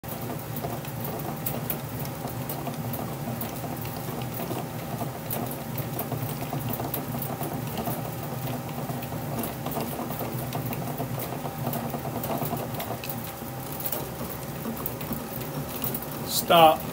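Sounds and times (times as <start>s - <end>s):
fine crackling and clicking: 0.0s - 16.9s.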